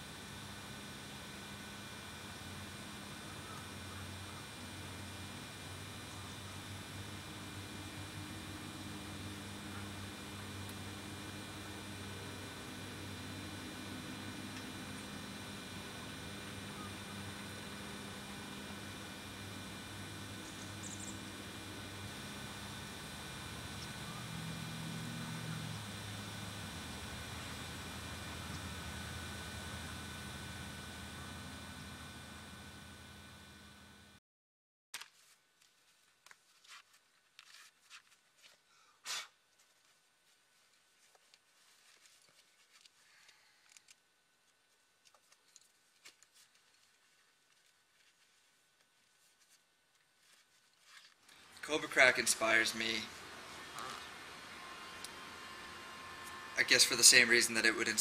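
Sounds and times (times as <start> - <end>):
low steady hum: 0.0 - 34.2, 41.0 - 58.0.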